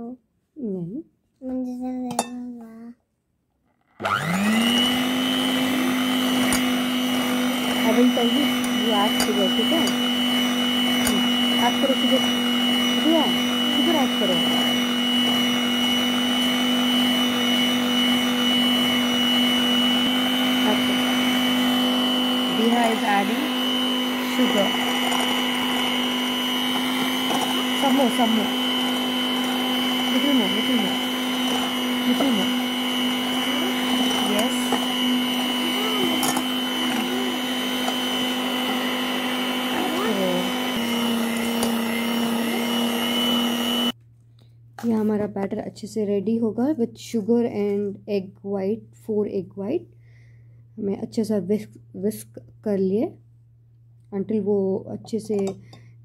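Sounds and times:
electric hand mixer running: 3.8s - 44.0s.

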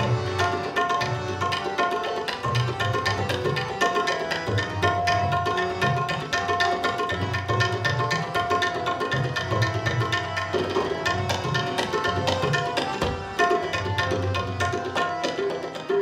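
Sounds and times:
harmonium reed notes: 0.0s - 16.0s
tabla strokes: 0.0s - 16.0s.

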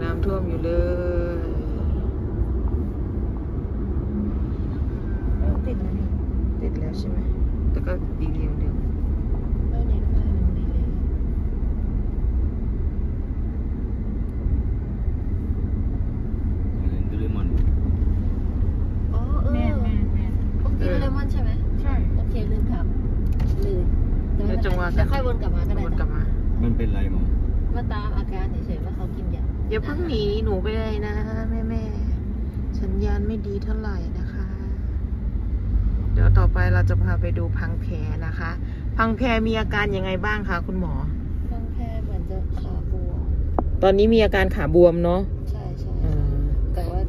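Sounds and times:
car engine and tyres rumbling: 0.0s - 47.0s.

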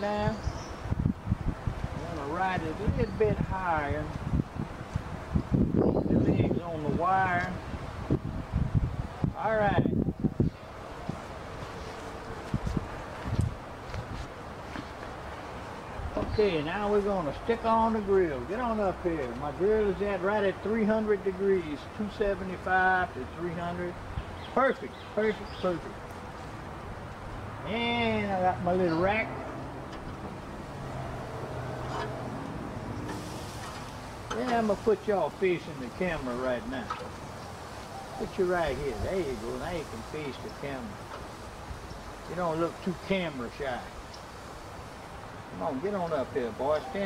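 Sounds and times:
wind hiss on microphone: 0.0s - 20.2s, 32.3s - 47.0s.

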